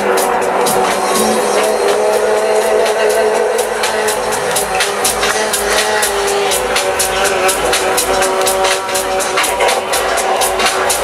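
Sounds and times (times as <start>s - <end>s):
loud techno music: 0.0s - 11.0s.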